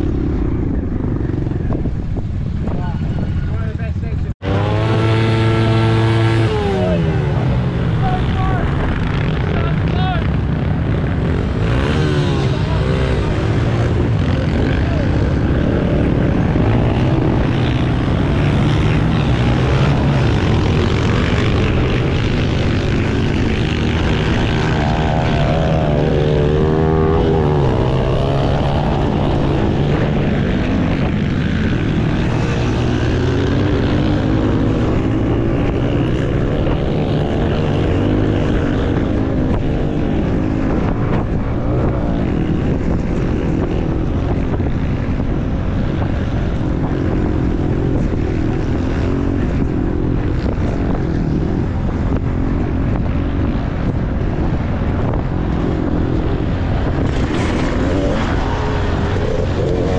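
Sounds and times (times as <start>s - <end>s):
motorbike engine revving: 4.3s - 59.9s.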